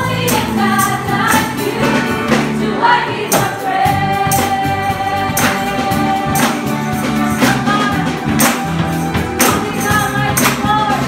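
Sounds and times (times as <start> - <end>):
tambourine jingles: 0.0 - 2.6, 3.2 - 11.0
women singing gospel song: 0.0 - 8.5, 9.4 - 11.0
instrumental backing: 0.0 - 11.0.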